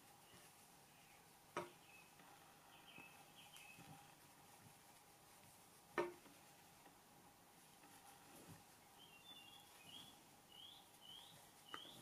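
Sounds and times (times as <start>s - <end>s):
bird chirps: 0.2s - 4.0s, 8.9s - 12.0s.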